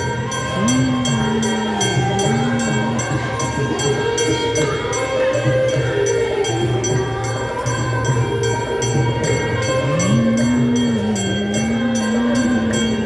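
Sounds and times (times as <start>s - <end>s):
devotional singing: 0.0s - 13.0s
metal percussion strikes: 0.0s - 13.0s.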